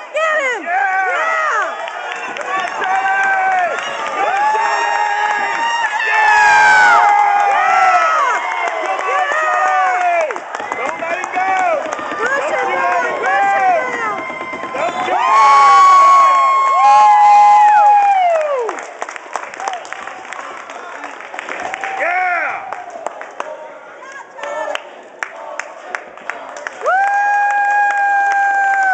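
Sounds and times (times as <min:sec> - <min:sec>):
crowd yelling and cheering: 0:00.0 - 0:28.9.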